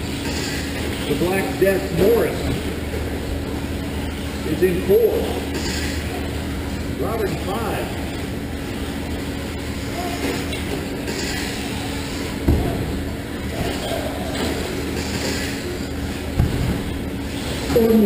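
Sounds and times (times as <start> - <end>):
constant hum: 0.0 - 18.0
dull thumps: 12.4 - 13.0, 16.3 - 17.1.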